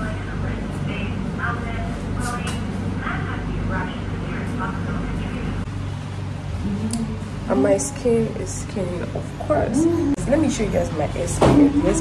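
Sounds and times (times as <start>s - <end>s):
low mechanical hum: 0.0s - 12.0s
indistinct voices: 6.6s - 12.0s.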